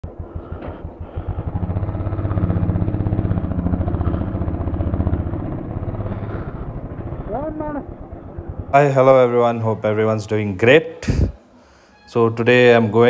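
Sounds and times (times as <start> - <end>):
motorcycle engine running: 0.0 - 10.6.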